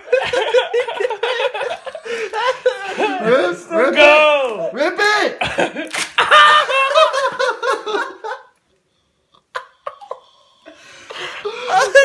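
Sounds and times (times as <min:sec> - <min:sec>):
men laughing: 0:00.0 - 0:03.7, 0:05.4 - 0:08.6, 0:09.5 - 0:10.4, 0:11.1 - 0:12.0.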